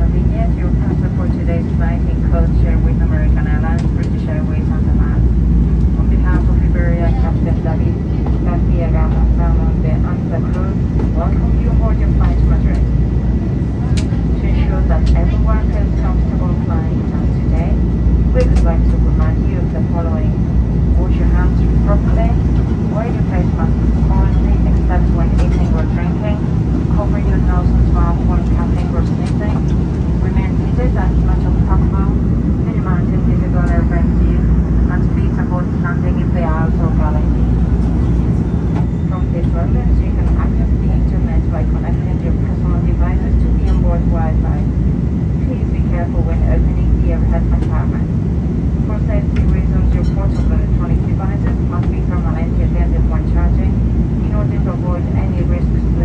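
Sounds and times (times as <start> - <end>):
airliner cabin rumble: 0.0 - 56.0
passengers talking indistinctly: 0.0 - 56.0.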